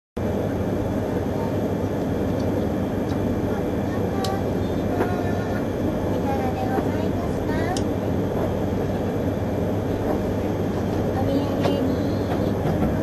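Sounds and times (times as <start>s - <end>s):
train equipment hum and hiss: 0.2s - 13.0s.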